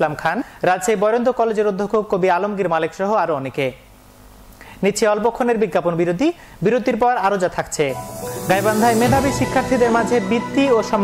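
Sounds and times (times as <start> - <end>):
hissing whoosh effect: 7.9 - 10.6
news background music: 7.9 - 11.0.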